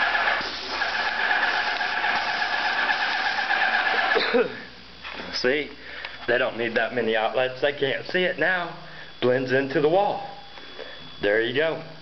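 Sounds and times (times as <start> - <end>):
spray gun hissing: 0.0 - 4.2.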